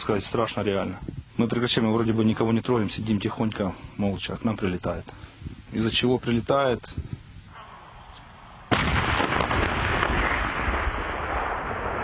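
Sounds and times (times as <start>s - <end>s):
echoing rumble: 7.6s - 12.0s
tank gun blast: 8.7s - 12.0s.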